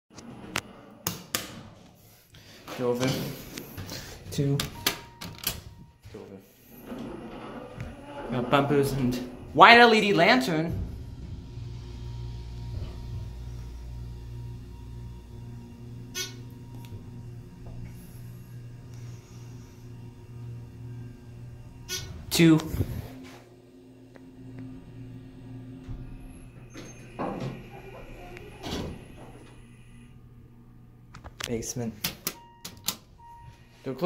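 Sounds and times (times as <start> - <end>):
elevator humming: 0.1 - 34.0.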